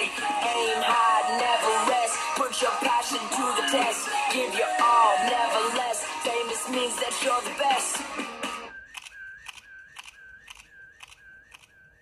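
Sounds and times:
electronic tick and whistling tone: 8.6s - 12.0s.

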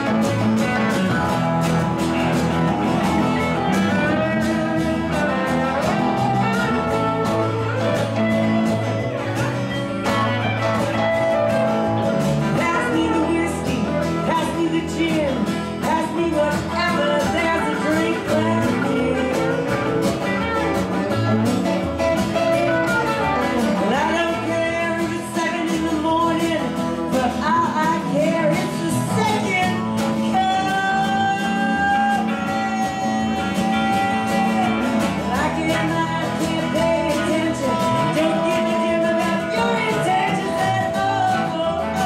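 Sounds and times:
bass guitar: 0.0s - 42.0s
cajon beat: 0.0s - 42.0s
electric guitar: 0.0s - 42.0s
strummed acoustic guitar: 0.0s - 42.0s
person singing lead vocal: 2.2s - 9.2s, 12.4s - 20.8s, 22.3s - 42.0s.

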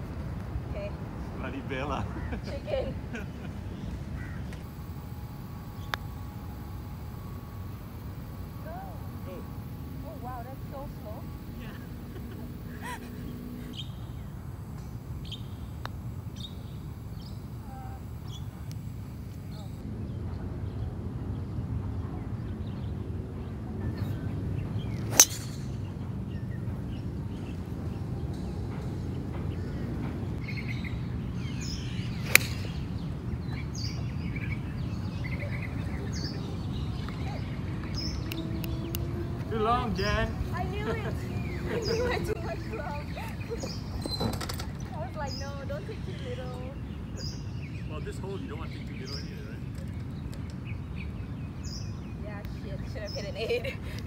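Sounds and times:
birds chirping: 0.8s - 54.0s
golf club striking ball: 25.1s - 25.8s, 32.1s - 33.0s.

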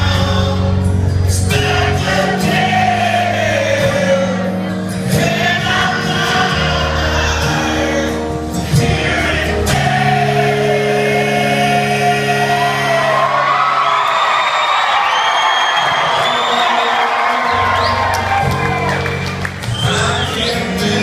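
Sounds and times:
person singing: 0.0s - 13.6s, 19.7s - 21.0s
crowd whooping: 10.2s - 21.0s.

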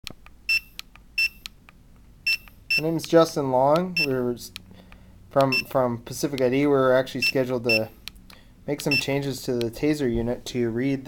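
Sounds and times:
barcode reader beeps: 0.5s - 1.5s, 2.2s - 2.9s, 4.0s - 4.2s, 5.5s - 5.8s, 7.2s - 7.9s, 8.9s - 9.1s.

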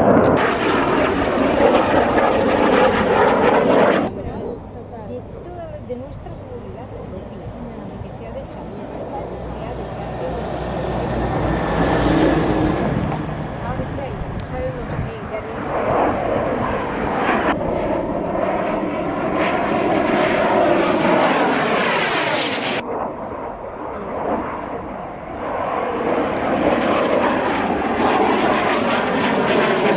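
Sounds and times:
jet engine roaring: 0.0s - 29.9s.

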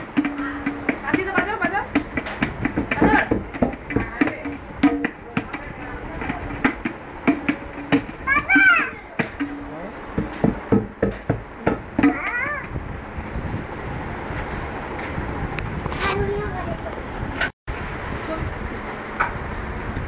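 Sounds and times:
child calling out: 8.2s - 9.2s, 12.0s - 12.8s.

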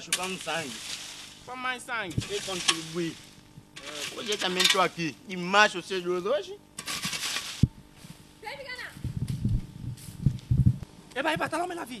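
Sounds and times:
footsteps on leaf litter: 0.0s - 4.6s, 6.8s - 9.0s.

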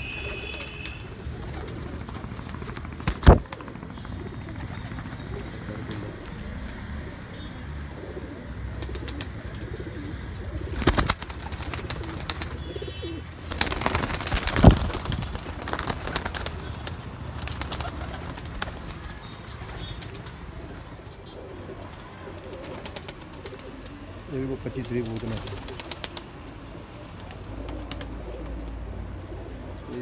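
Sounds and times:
pigeons cooing: 0.0s - 30.0s.

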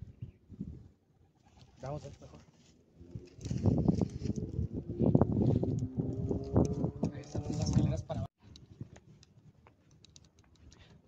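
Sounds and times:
footsteps crunching through brush: 1.8s - 4.6s.

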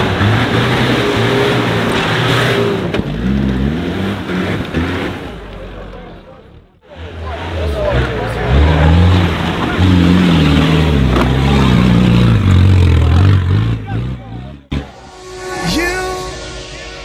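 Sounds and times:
off-road vehicle engine revving: 0.0s - 15.0s.

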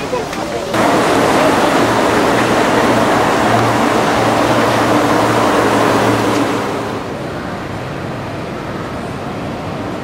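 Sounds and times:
monorail train passing overhead: 0.0s - 10.0s.

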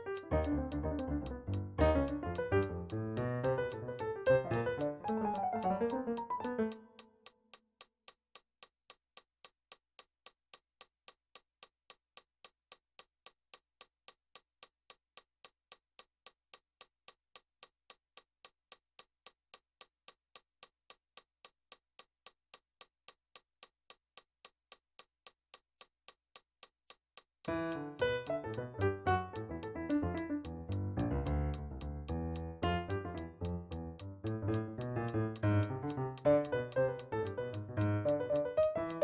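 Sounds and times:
piano notes: 0.0s - 7.0s, 27.5s - 39.0s
metronome clicking: 0.0s - 7.6s, 27.4s - 39.0s.

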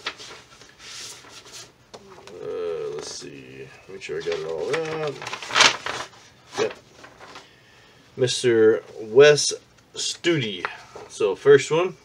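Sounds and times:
paper rustling and sliding: 0.0s - 7.6s.

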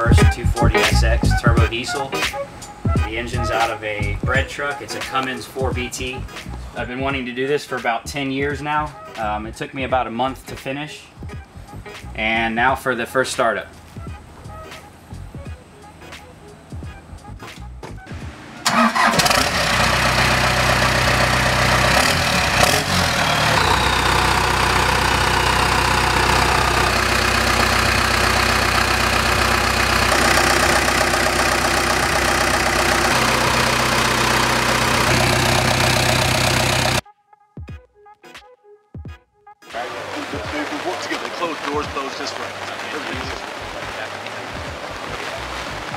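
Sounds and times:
diesel engine starting and idling: 0.0s - 6.9s, 11.5s - 37.0s.

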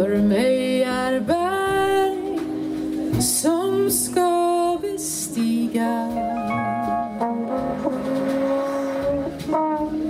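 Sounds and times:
jazz band sustained notes: 0.0s - 10.0s.

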